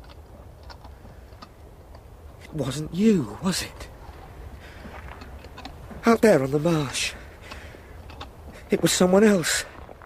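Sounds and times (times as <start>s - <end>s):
faint clicks and knocks: 0.0s - 2.5s, 3.8s - 6.1s, 7.4s - 8.7s
low steady rumble: 0.0s - 10.0s.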